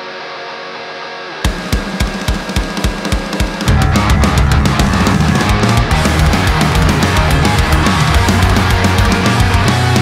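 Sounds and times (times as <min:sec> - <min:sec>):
punk rock band playing: 0:00.1 - 0:10.0
fast drum beat: 0:01.5 - 0:10.0.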